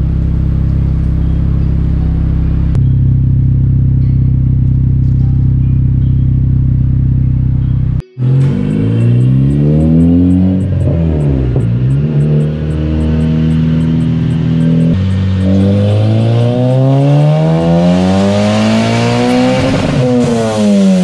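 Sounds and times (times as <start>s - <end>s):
car engine revving on dyno: 8.2s - 21.0s.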